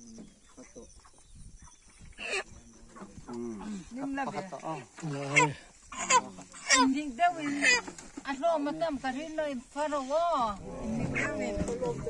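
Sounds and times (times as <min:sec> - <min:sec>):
voices: 0:02.2 - 0:12.0.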